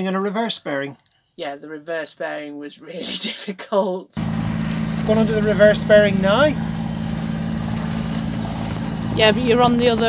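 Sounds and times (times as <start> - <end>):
diesel engine humming: 4.2 - 10.0
faint wind and water: 4.2 - 10.0.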